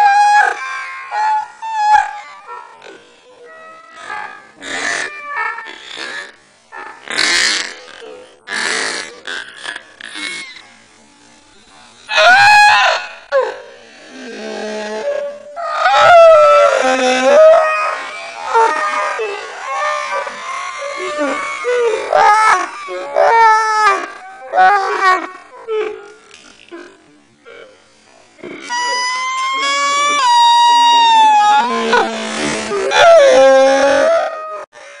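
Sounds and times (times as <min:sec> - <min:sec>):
hysterical wailing laughter: 0:00.0 - 0:05.7, 0:15.3 - 0:25.5, 0:28.7 - 0:34.7.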